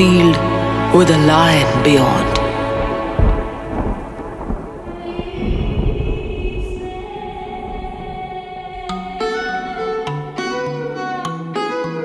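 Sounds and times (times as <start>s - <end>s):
rumbling thunder with rain: 0.6s - 10.8s.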